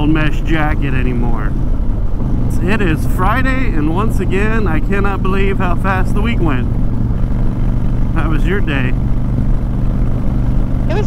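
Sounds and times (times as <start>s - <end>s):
motorcycle engine droning: 0.0s - 11.0s.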